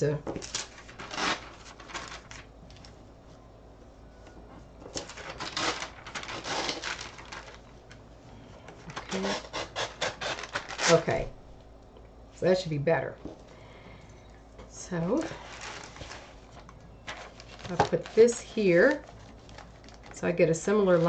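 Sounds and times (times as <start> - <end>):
paper tearing along a ruler: 1.0 - 1.7, 9.1 - 11.0.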